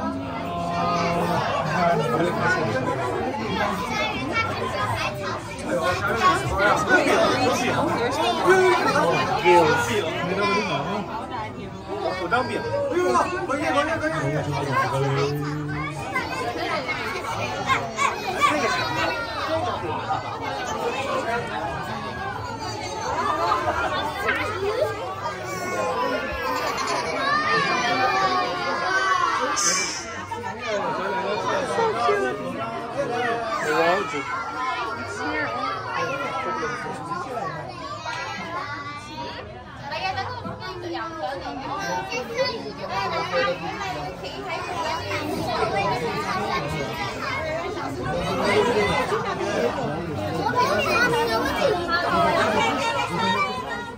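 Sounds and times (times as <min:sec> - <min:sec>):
children's voices: 0:00.0 - 0:53.9
crowd chatter: 0:00.0 - 0:53.9.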